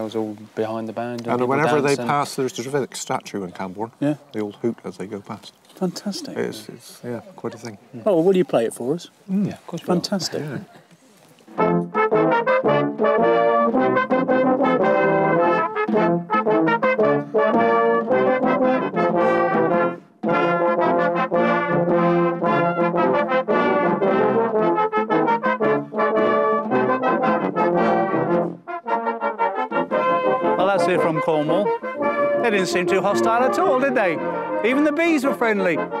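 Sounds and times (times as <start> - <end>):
brass band playing: 1.2 - 2.7, 11.5 - 36.0.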